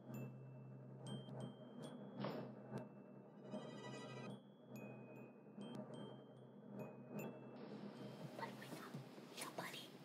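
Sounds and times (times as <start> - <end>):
girl whispering faintly: 8.4 - 10.0.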